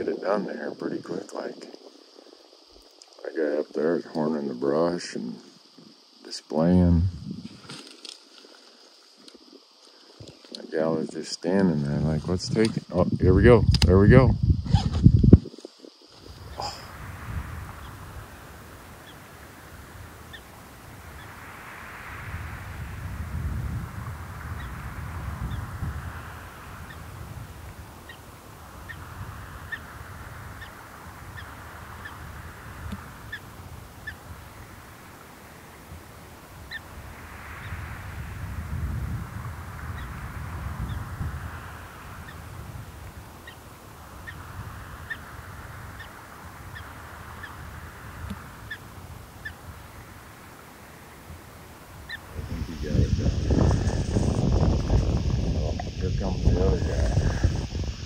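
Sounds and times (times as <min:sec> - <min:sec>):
wind gusting on microphone: 0:00.0 - 0:58.0
faint short bird calls: 0:28.8 - 0:34.4, 0:45.9 - 0:49.6.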